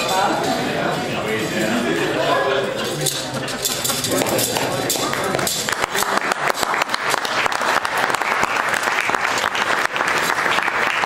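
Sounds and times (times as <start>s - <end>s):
voices: 0.0s - 6.4s
audience clapping: 4.1s - 11.0s.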